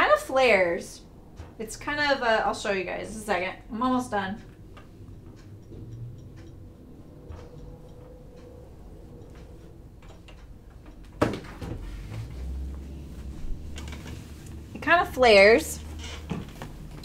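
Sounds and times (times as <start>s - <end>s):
low hum: 0.3s - 17.0s.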